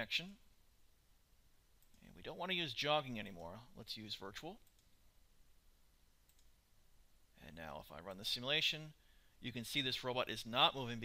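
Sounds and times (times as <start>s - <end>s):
computer mouse clicks: 4.6s - 5.0s, 6.2s - 6.6s.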